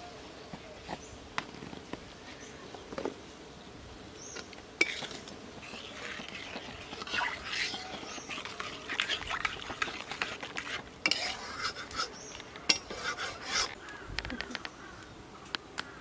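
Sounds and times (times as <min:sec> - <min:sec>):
metal spatula scraping pan: 0:04.8 - 0:13.8.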